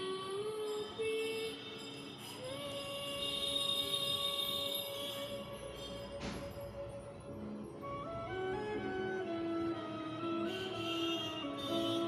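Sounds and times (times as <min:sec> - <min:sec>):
music with long held notes: 0:00.0 - 0:12.0.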